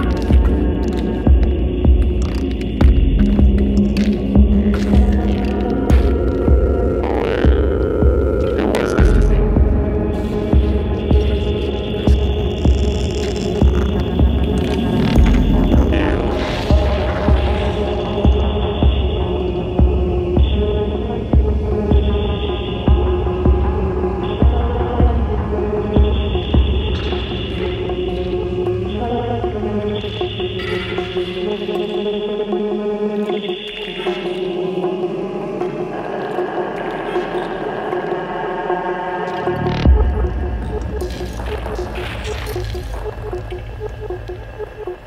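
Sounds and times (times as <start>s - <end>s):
deep bass pulse: 0.0s - 20.7s
synthesizer drones: 0.0s - 45.0s.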